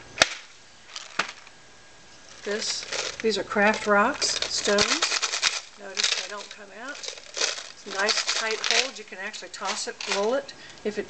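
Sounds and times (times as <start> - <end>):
plastic container snap: 0.2 - 1.5.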